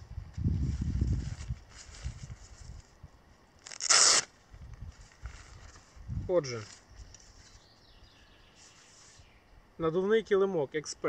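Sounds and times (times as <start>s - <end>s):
fabric handling rumble: 0.0s - 3.0s
velcro strip tearing open: 3.6s - 4.4s.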